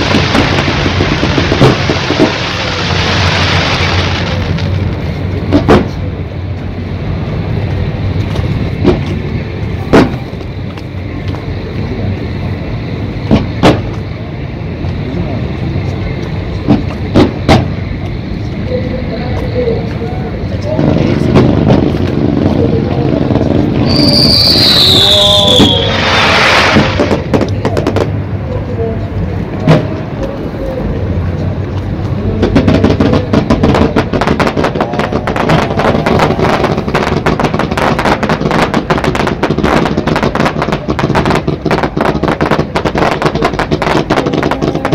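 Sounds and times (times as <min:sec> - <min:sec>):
firework whistle: 0:00.0 - 0:05.1, 0:23.4 - 0:27.4
fireworks booming: 0:00.0 - 0:15.0, 0:15.8 - 0:18.5, 0:19.2 - 0:28.4, 0:29.5 - 0:30.8, 0:31.5 - 0:44.9
low rumble: 0:00.0 - 0:39.3.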